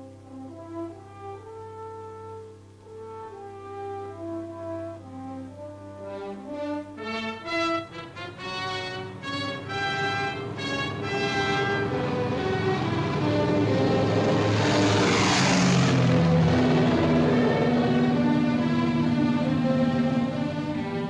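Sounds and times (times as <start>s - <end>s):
brass orchestral music: 0.0s - 21.0s
airplane engines droning: 6.2s - 21.0s.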